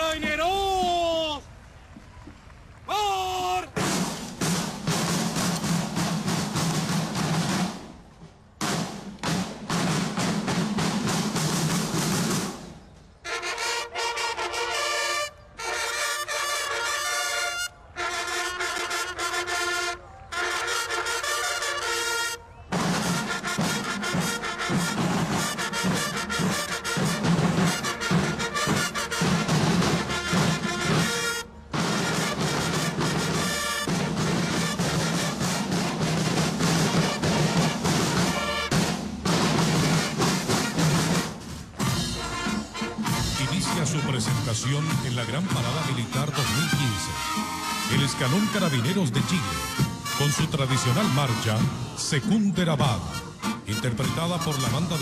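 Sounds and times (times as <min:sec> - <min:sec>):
snare drums cadence: 0:03.6 - 0:13.8
brass fanfare: 0:13.2 - 0:55.0.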